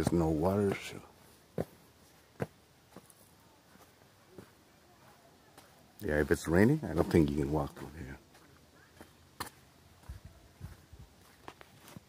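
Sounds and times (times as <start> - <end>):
footsteps on dirt trail: 0.0 - 12.0.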